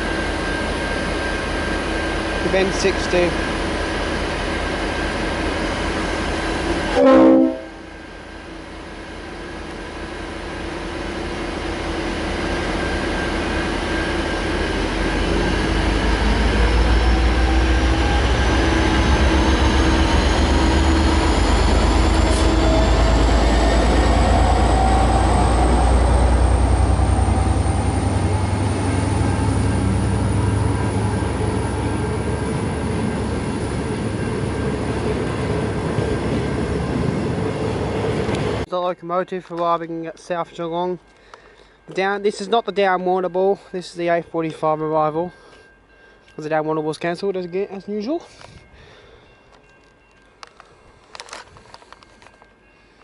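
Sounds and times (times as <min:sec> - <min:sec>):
diesel locomotive rumble: 0:00.0 - 0:42.6
thin rising whine: 0:12.8 - 0:35.4.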